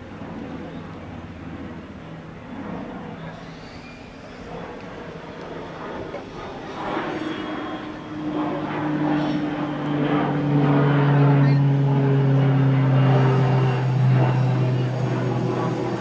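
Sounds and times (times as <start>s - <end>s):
engine droning past: 0.0s - 16.0s.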